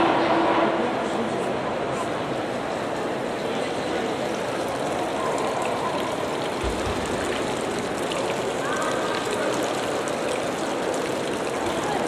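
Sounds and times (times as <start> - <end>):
fountain water running: 1.0 - 12.0.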